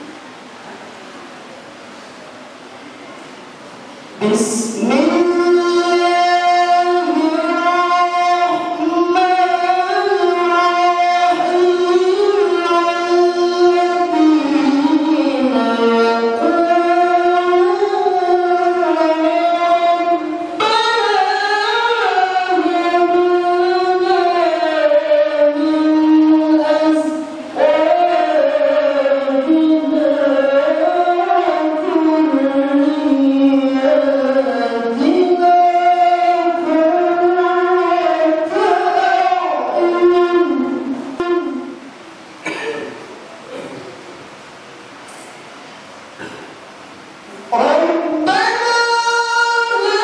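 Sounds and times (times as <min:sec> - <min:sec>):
person chanting: 0:04.2 - 0:41.8
solo devotional singing: 0:04.2 - 0:41.8, 0:47.5 - 0:50.0.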